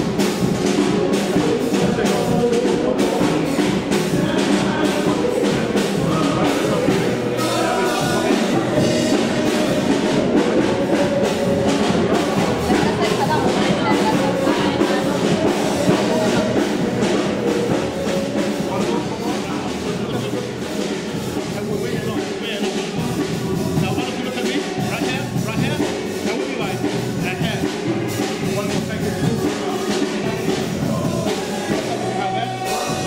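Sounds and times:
music with drum beat: 0.0s - 33.0s.

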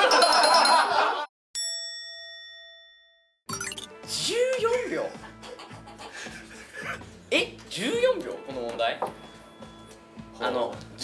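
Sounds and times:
laughter: 0.0s - 1.3s, 5.2s - 7.1s
bell-like ding: 1.6s - 3.9s.

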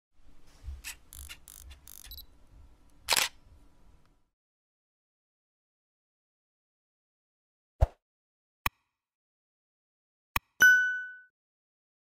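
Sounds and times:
camera mechanical whirs and clicks: 0.8s - 2.3s, 3.0s - 3.4s
camera shutter click: 0.9s - 2.2s, 3.1s - 3.4s.

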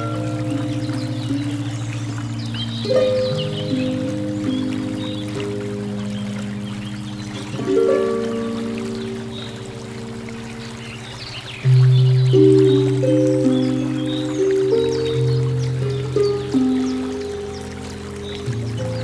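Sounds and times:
harp playing slow hymn: 0.0s - 19.0s
shallow river over stones: 0.0s - 19.0s.

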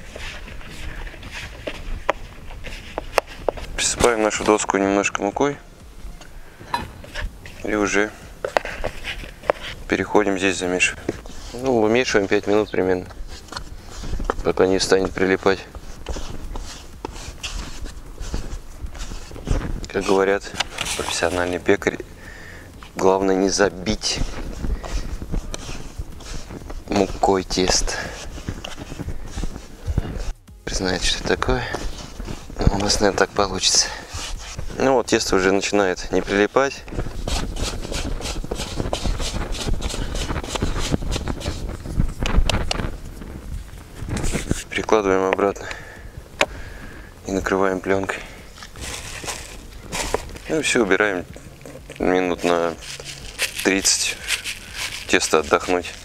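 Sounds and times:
dough kneaded on wooden board: 6.9s - 56.0s.

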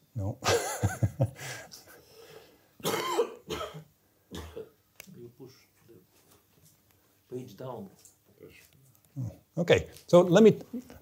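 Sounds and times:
person laughing: 0.4s - 1.6s
person coughing: 2.8s - 4.8s.

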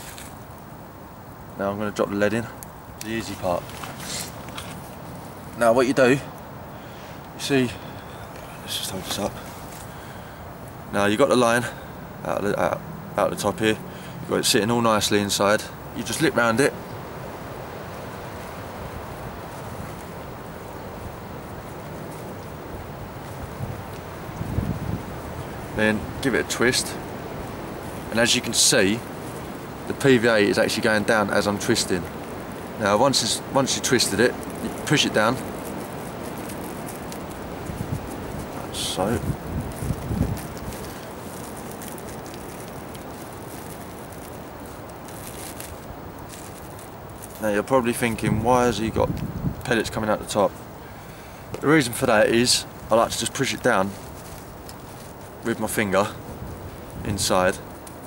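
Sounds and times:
rustling with light crackles: 0.0s - 58.0s
steady wind: 0.0s - 58.0s.

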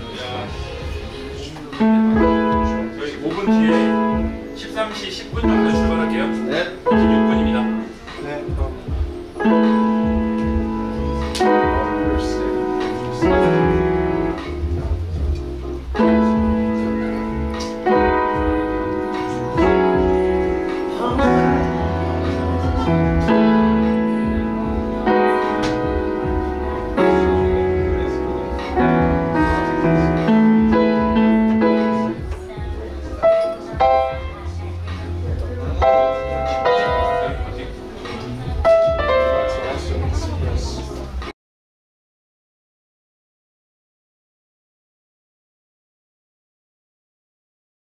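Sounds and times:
piano chords: 0.0s - 41.3s
low held bass note: 9.5s - 41.0s.

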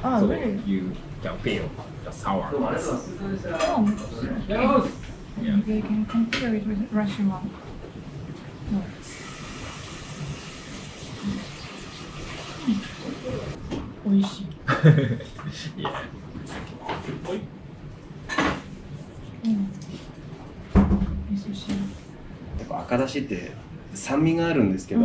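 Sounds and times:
steady hiss: 9.0s - 13.6s
woman laughing: 14.6s - 15.3s.

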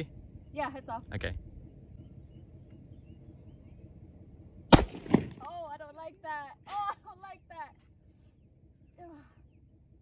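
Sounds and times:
faint bird chirps: 0.0s - 4.7s, 7.9s - 10.0s
low steady rumble: 0.0s - 10.0s.

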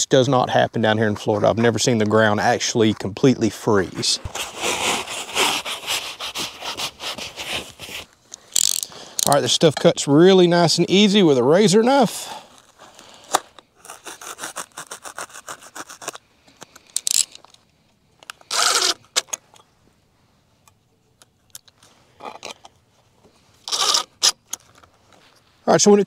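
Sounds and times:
foam scraping rustles: 2.6s - 8.2s
knife sawing through foam: 4.3s - 8.1s, 13.8s - 16.2s.

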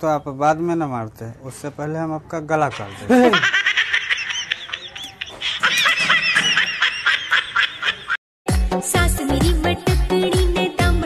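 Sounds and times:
background music: 8.5s - 11.0s.

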